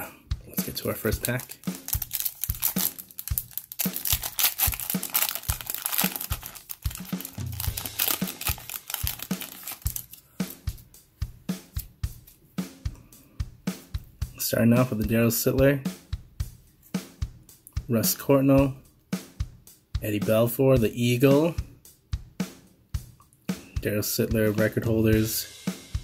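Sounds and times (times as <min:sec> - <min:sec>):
background music with drum beat: 0:00.0 - 0:26.0
foil wrapper crinkling and tearing: 0:01.0 - 0:10.2.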